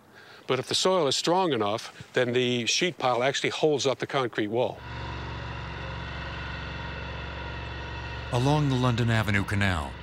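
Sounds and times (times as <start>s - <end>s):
construction machinery engine running: 4.8s - 10.0s.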